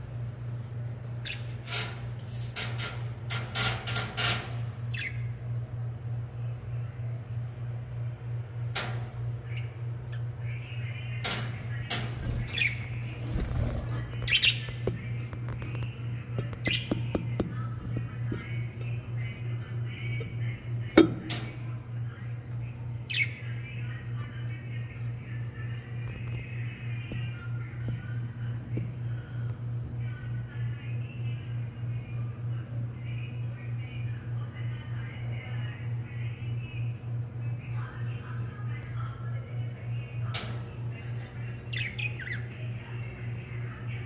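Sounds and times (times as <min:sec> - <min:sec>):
steady low hum: 0:00.0 - 0:44.0
budgerigars chirping and chattering: 0:10.7 - 0:14.9, 0:41.6 - 0:42.6.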